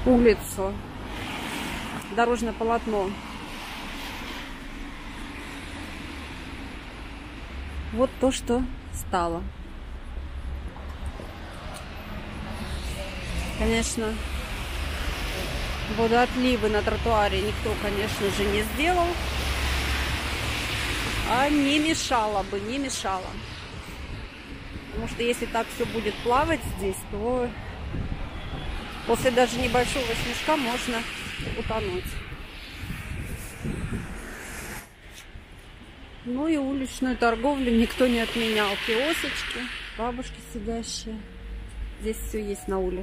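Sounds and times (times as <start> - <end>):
traffic on a wet road: 0.0 - 43.0.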